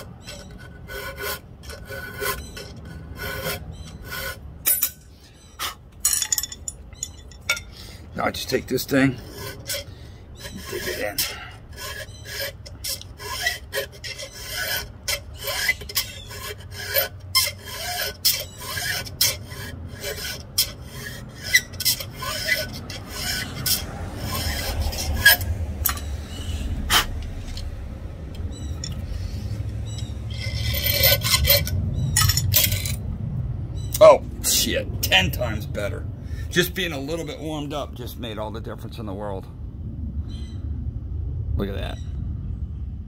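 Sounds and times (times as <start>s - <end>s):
file rasping on chainsaw chain: 0.0s - 4.4s, 8.4s - 26.2s, 28.9s - 31.8s
low rumble: 23.6s - 43.0s.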